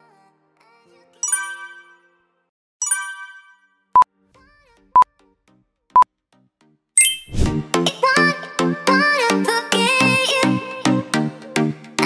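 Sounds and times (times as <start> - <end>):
bright chime: 1.2 - 2.2, 2.8 - 3.8, 7.0 - 7.5
upbeat background music: 7.0 - 12.0.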